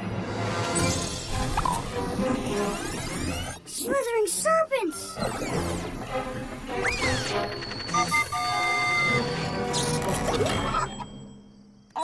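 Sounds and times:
background music: 0:00.0 - 0:12.0
held beeping tones: 0:06.8 - 0:11.4.

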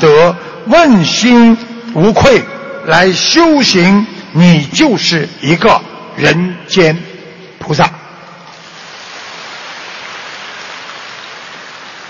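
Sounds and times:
audience applauding: 0:08.7 - 0:12.0.

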